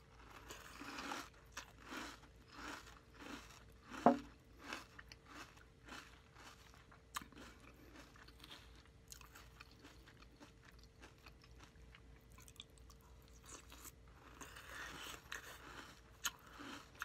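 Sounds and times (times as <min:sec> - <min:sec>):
chewing crunchy cereal: 0:00.0 - 0:17.0
faint steady hum: 0:00.0 - 0:17.0.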